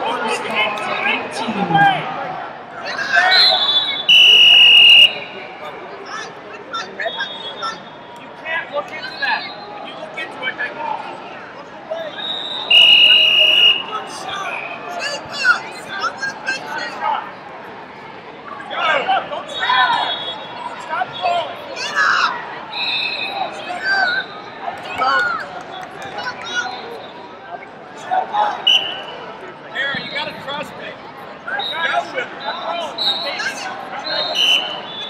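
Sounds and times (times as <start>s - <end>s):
crowd chatter and shouts: 0.0s - 35.0s
referee's whistle blasts: 3.2s - 5.4s, 7.0s - 8.2s, 12.1s - 14.8s, 19.5s - 21.3s, 22.7s - 24.5s, 28.6s - 29.3s, 31.6s - 35.0s.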